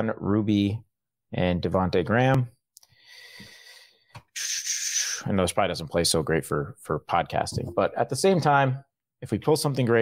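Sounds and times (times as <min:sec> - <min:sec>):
airy intake of breath: 0:02.9 - 0:05.3.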